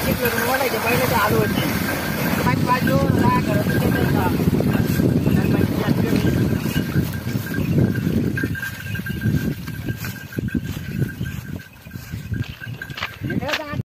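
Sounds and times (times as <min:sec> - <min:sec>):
cart rumbling churn: 0:00.0 - 0:13.8.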